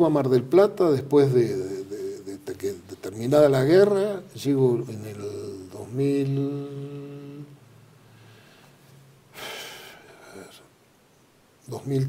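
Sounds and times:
man breathing in: 8.0s - 10.5s.

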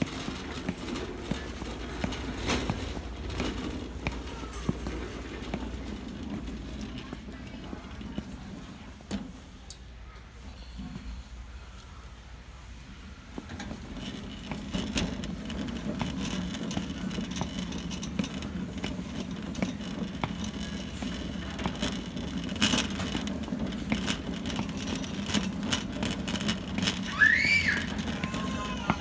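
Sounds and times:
cart frame rattling: 0.0s - 9.4s, 13.2s - 29.0s
footsteps: 0.0s - 9.5s, 13.2s - 29.0s
shopping cart wheels rumbling: 0.0s - 29.0s.

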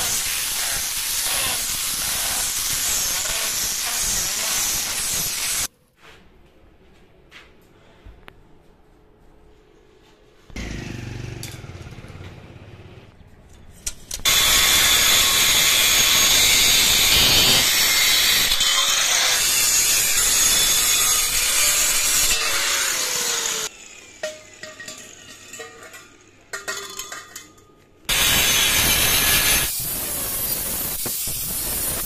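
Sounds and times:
angle grinder cutting metal: 0.0s - 5.7s, 14.2s - 26.4s, 28.1s - 32.0s
metal tubes clinking: 24.2s - 27.9s.

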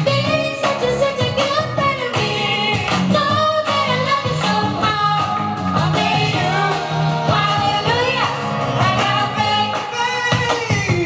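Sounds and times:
instrumental accompaniment with beat: 0.0s - 11.0s
woman and man singing duet: 0.0s - 11.0s.

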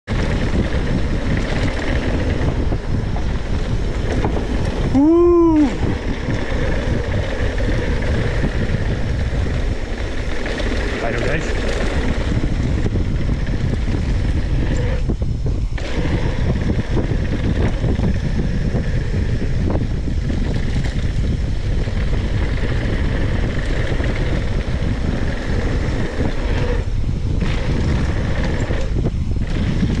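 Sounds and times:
wind buffeting microphone: 0.0s - 30.0s
bike tyres rumbling over dirt: 0.1s - 30.0s.

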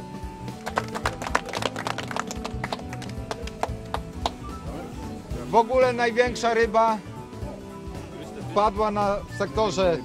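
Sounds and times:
people applauding: 0.4s - 4.5s.

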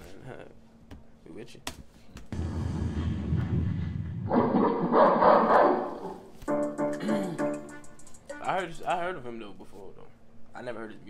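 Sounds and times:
low rumble: 2.3s - 5.3s.

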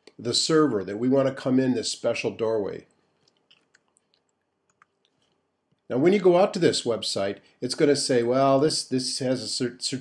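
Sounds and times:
man speaking: 0.0s - 2.8s, 5.9s - 10.0s.

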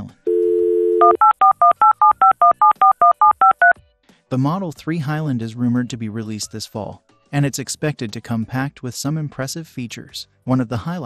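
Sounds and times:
telephone dial tone: 0.3s - 3.7s
touch-tone dialing beeps: 0.3s - 3.7s.

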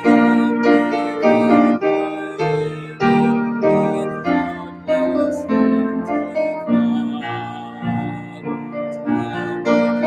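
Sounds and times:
piano playing slow chords: 0.0s - 10.0s.

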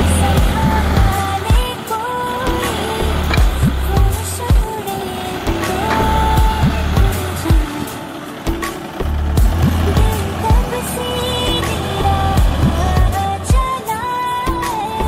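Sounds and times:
music with deep bass drum beat: 0.0s - 1.8s, 2.5s - 4.7s, 5.5s - 10.8s, 11.7s - 13.8s.

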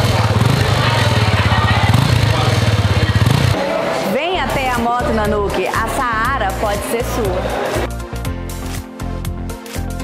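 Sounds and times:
motorcycle engine running: 0.0s - 3.6s.

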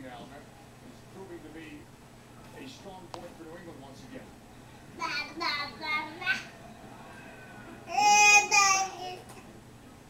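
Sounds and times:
baby cooing: 7.8s - 9.5s.

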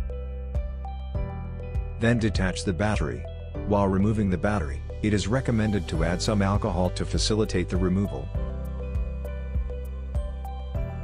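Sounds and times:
soft chords over steady beat: 5.8s - 11.0s.

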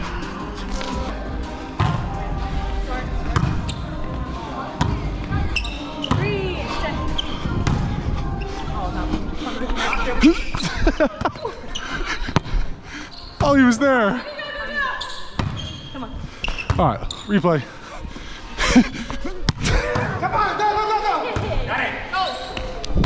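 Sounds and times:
players' voices in a hall: 0.0s - 23.0s.

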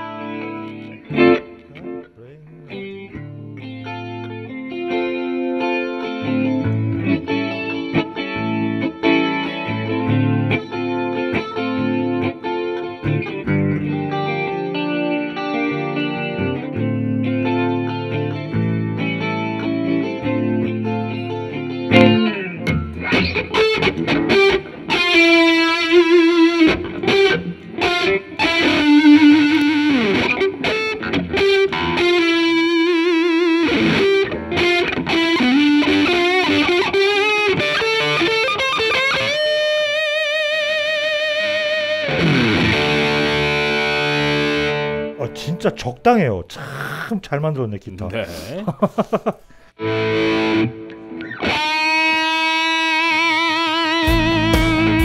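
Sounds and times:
electric guitar playing: 0.0s - 46.0s, 49.4s - 55.0s.

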